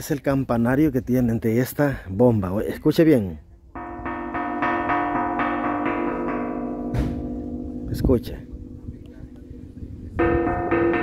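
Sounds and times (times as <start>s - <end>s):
iron bell struck rapidly: 3.8s - 11.0s.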